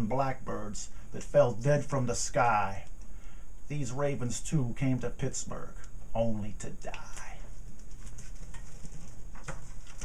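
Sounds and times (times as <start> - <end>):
book handling noise: 7.0 - 10.0.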